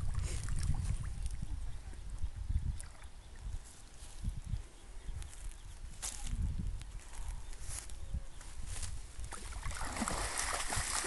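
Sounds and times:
water sloshing: 9.3s - 11.0s.

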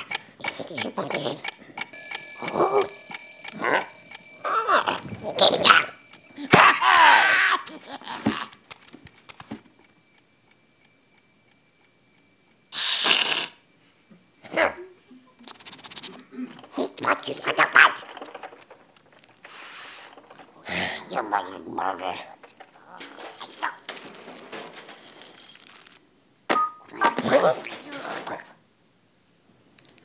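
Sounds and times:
faint high ringing: 1.9s - 28.9s
cartoon creatures chattering gibberish: 15.5s - 18.3s.

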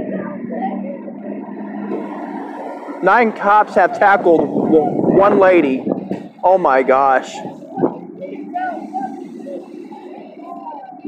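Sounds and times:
faint wavering sounds: 0.0s - 11.0s
vehicle engine idling: 0.0s - 11.0s.

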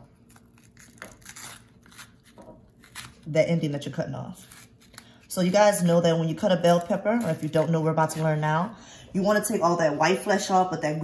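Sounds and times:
knife crunching through pepper: 0.0s - 3.2s.

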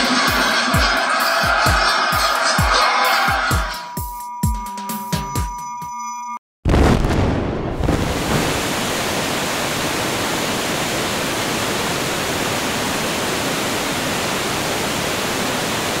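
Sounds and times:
waterfall rushing: 8.0s - 16.0s.

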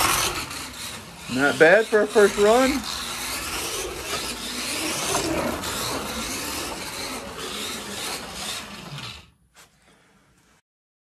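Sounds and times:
slot car guide rasping: 0.0s - 9.2s
small electric motor whirring: 0.0s - 9.4s.

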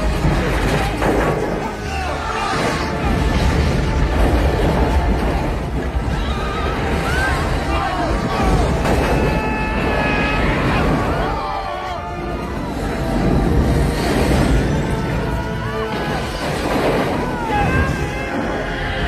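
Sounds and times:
people screaming: 0.0s - 4.0s, 4.8s - 19.0s
debris crashing: 0.0s - 19.0s
deep rumble of explosions: 0.0s - 19.0s.

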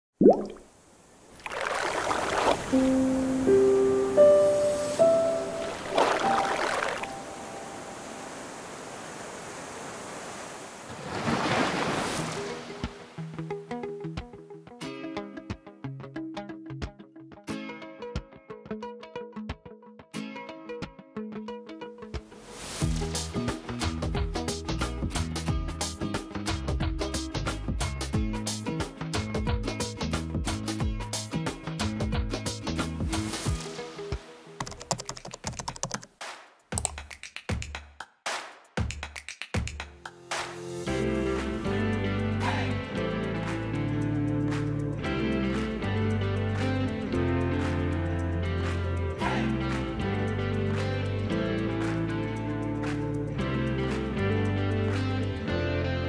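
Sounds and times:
background music: 2.7s - 8.4s, 12.2s - 34.8s, 39.7s - 56.0s
keyboard typing clicks: 34.6s - 36.1s.

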